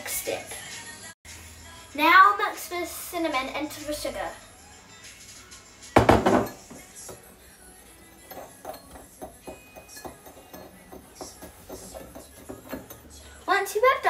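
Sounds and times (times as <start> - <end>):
metal spoon clinking in ceramic bowl: 8.1 - 13.2.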